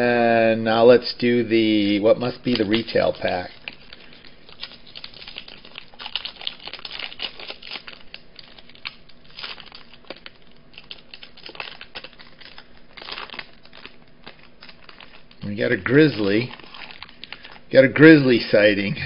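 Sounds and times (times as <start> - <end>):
foil wrapper crinkling and tearing: 1.7 - 18.9.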